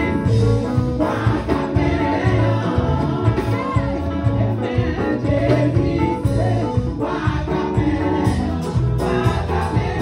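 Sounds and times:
live backing band with bass: 0.0 - 10.0
women singing gospel: 0.0 - 10.0.

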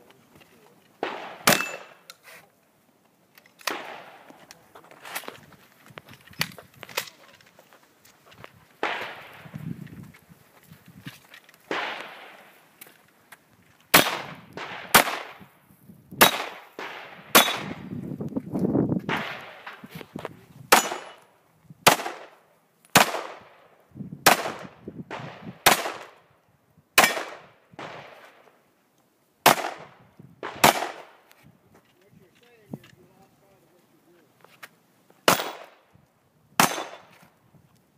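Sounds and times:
pistol shots with echo: 1.0 - 2.0, 3.6 - 4.3, 8.8 - 9.5, 11.7 - 12.5, 13.9 - 15.5, 16.2 - 17.8, 19.1 - 19.8, 20.7 - 21.2, 21.8 - 23.6, 24.2 - 26.2, 27.0 - 28.3, 29.4 - 31.2, 35.3 - 35.8, 36.6 - 37.1.

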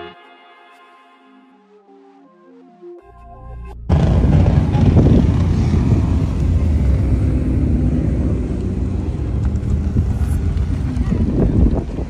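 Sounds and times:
car engine rumbling: 3.9 - 12.0.

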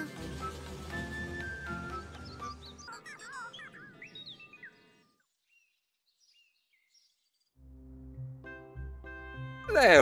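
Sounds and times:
light background music: 0.0 - 4.3, 7.6 - 10.0
birds chirping: 0.0 - 7.6.

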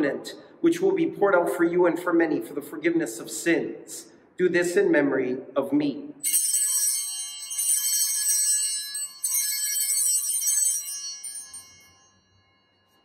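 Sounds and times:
altar bells jangling: 6.2 - 13.0.

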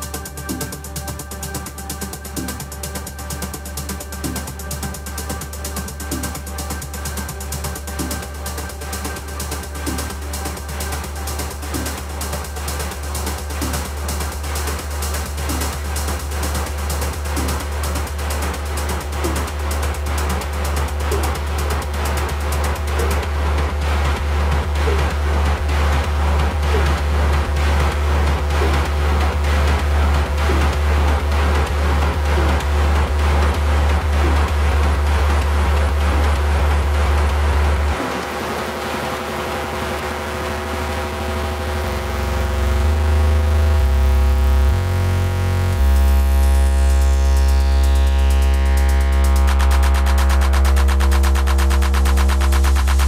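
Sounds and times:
bass line: 0.0 - 53.0
layered synth tones: 0.0 - 53.0
techno kick drum: 0.0 - 53.0.

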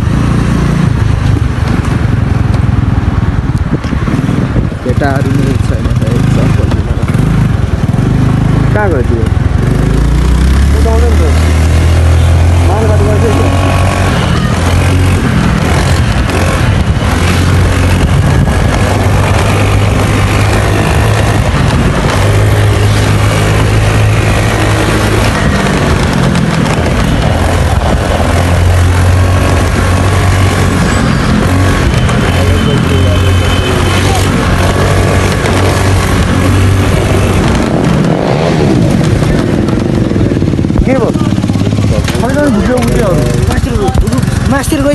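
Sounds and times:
motorcycle engine running: 0.0 - 44.9.

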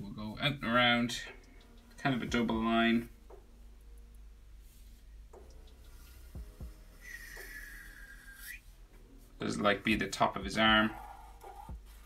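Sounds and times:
marker squeaking on paper: 10.9 - 12.0.

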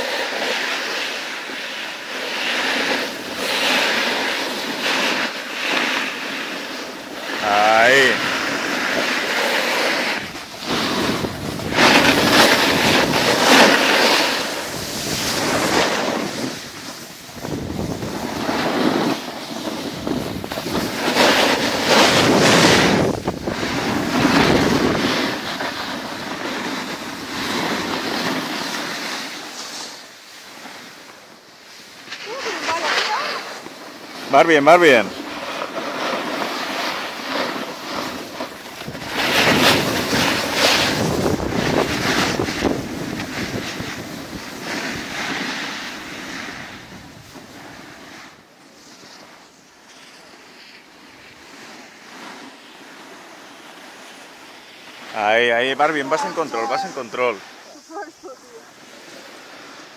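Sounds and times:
edges scraping over packed snow: 0.0 - 59.9
wind on microphone: 7.4 - 28.3, 37.5 - 48.1.

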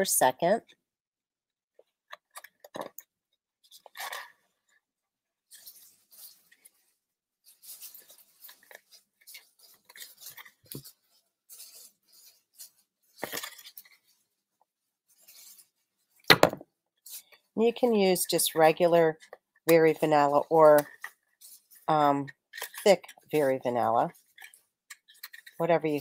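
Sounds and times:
cardstock rustling and crinkling: 3.6 - 4.7, 5.4 - 14.4, 15.1 - 26.0.

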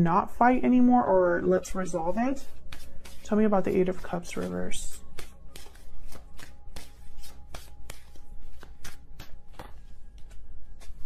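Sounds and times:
cards being shuffled by hand: 2.0 - 11.0.

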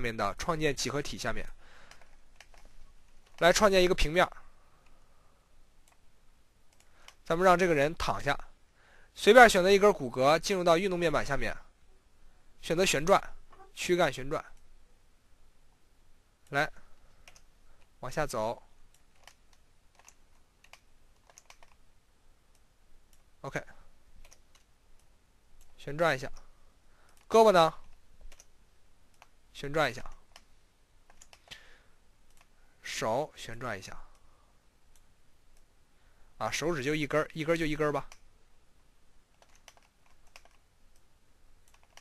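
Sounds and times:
keyboard and mouse clicks: 1.8 - 3.6, 6.7 - 7.2, 17.2 - 17.9, 18.9 - 21.8, 24.2 - 26.5, 27.1 - 29.4, 31.1 - 31.6, 32.3 - 32.5, 39.3 - 42.0.

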